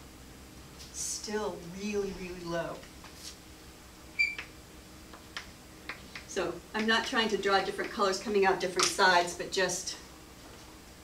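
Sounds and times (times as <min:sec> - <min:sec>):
faint room hum: 0:00.0 - 0:11.0.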